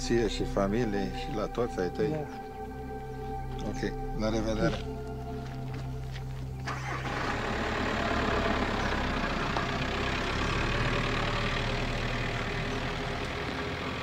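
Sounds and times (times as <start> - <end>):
van engine running: 0.0 - 14.0.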